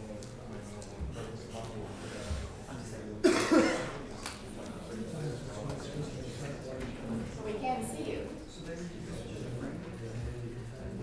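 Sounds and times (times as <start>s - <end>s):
person coughing: 3.2s - 4.0s.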